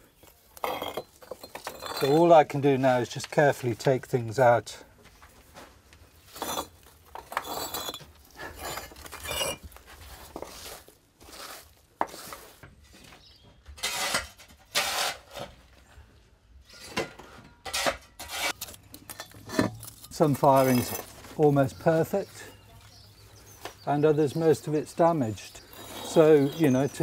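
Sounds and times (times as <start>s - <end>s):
bricks clinking and knocking: 0.2s - 2.4s, 6.3s - 9.7s, 25.5s - 27.0s.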